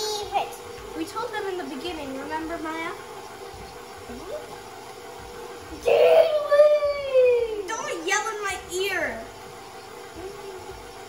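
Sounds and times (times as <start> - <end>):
stand mixer humming: 0.0 - 11.0
child's loud voice: 5.8 - 9.2.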